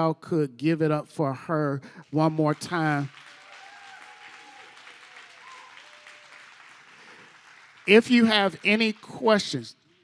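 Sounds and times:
congregation applauding: 0:02.0 - 0:10.0.

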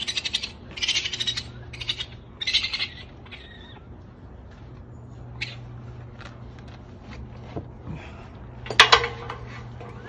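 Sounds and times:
baby raccoons chittering: 0:00.0 - 0:06.6.

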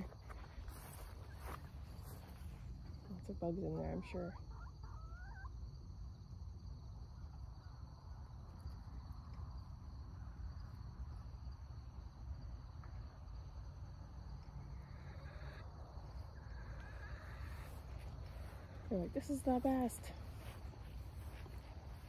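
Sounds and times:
insect chorus: 0:00.0 - 0:22.0.

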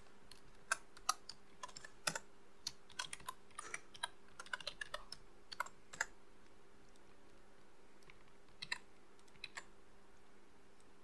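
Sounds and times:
faint steady hum: 0:00.0 - 0:11.0
typing on a keyboard: 0:00.3 - 0:06.1.

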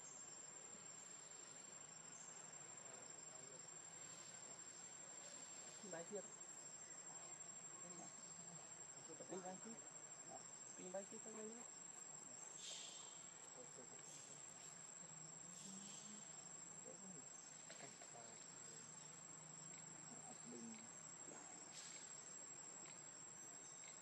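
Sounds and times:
insect rasping buzzes: 0:00.0 - 0:24.0
high-pitched insect drone: 0:03.1 - 0:24.0.

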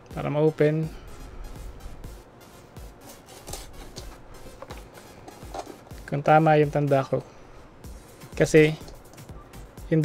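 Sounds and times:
quiet background music: 0:00.0 - 0:10.0
paper tape peeling off cardboard: 0:03.0 - 0:04.2.

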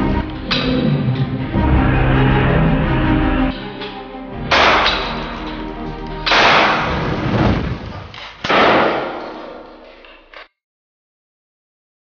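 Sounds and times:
dark film music: 0:00.0 - 0:07.4
handgun shots echoing: 0:04.5 - 0:05.5, 0:06.2 - 0:07.0, 0:08.4 - 0:09.7.

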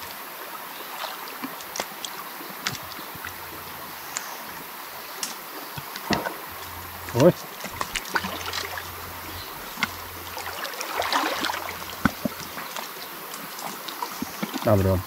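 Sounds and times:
stream water sloshing and splashing: 0:00.0 - 0:15.0.

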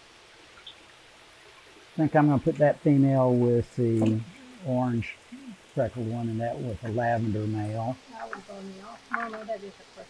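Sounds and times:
faint trickle of water: 0:00.0 - 0:10.0
water drip: 0:00.0 - 0:10.0.

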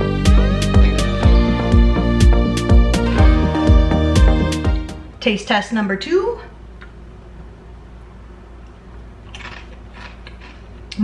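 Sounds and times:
low steady room hum: 0:04.7 - 0:11.0.

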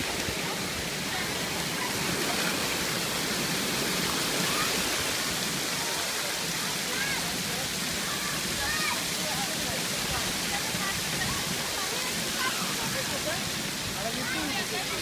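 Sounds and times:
fountain water jets splashing: 0:00.0 - 0:15.0.

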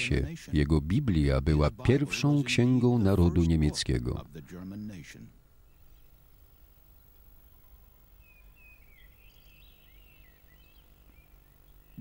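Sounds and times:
low steady background rumble: 0:00.0 - 0:12.0
faint songbird warbling: 0:05.5 - 0:12.0.

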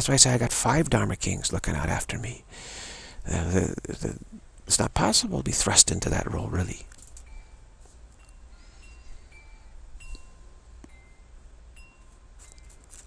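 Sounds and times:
steady low hum: 0:00.0 - 0:13.0
wind chimes tinkling: 0:07.0 - 0:13.0.

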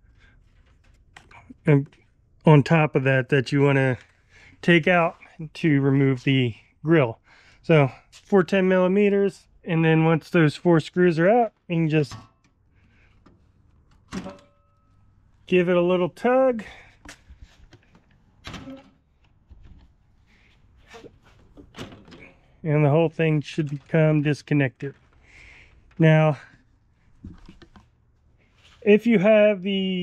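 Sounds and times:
person speaking: 0:01.3 - 0:12.2, 0:15.4 - 0:17.0, 0:22.6 - 0:25.0, 0:25.9 - 0:26.6, 0:28.8 - 0:30.0.

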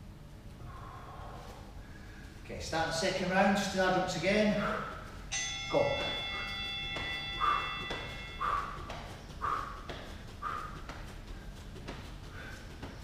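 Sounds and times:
timer bell ringing: 0:05.2 - 0:08.9
bare feet thudding on a mat: 0:05.9 - 0:13.0.

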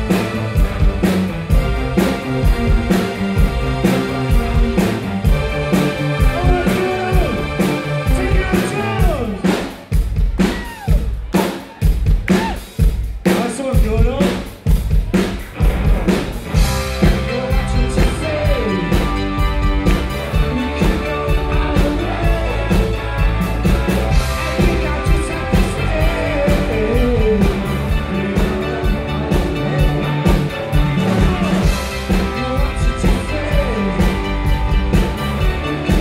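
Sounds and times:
bass: 0:00.0 - 0:36.0
drum kit beat: 0:00.0 - 0:36.0
keyboards: 0:00.0 - 0:36.0
live rock band playing: 0:00.0 - 0:36.0.

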